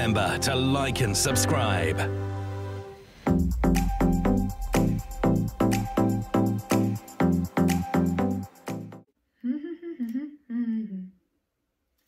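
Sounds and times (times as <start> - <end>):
woman humming: 9.4 - 11.2.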